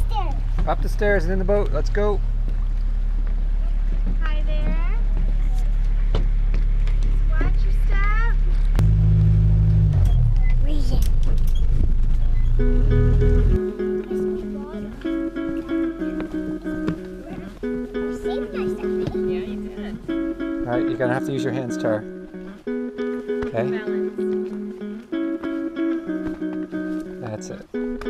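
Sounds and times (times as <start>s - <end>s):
boat engine droning: 5.0s - 10.6s, 11.2s - 22.9s
plucked-string acoustic music: 8.8s - 28.0s.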